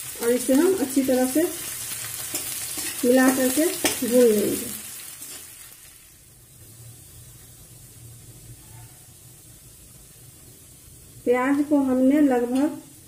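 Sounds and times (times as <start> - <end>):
onions sizzling in oil: 0.0 - 13.0.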